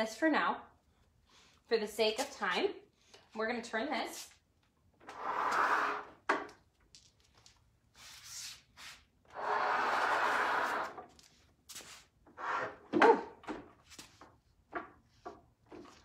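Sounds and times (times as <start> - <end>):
furniture scraping slide: 5.1 - 6.1, 9.4 - 11.0.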